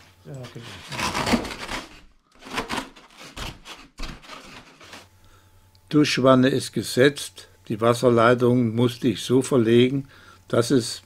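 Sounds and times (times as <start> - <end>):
polystyrene rubbing on polystyrene: 0.0 - 5.1.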